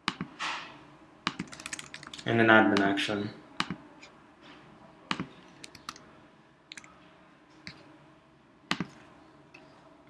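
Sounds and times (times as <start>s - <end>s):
keyboard and mouse clicks: 1.3s - 2.9s, 5.1s - 6.0s.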